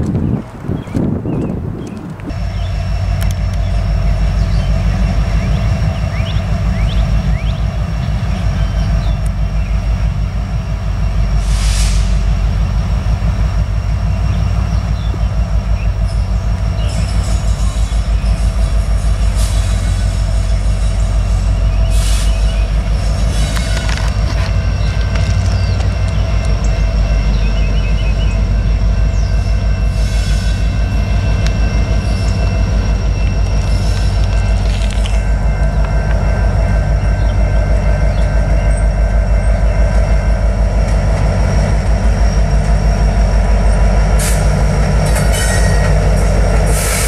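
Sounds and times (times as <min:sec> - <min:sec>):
locomotive rumble: 0:00.0 - 0:47.0
short hiss: 0:11.4 - 0:12.2.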